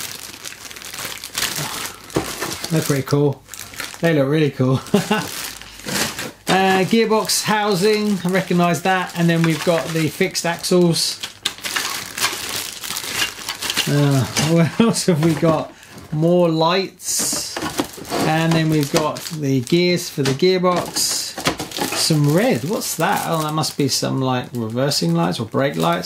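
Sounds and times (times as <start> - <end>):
plastic bags crinkling: 0.0 - 26.0.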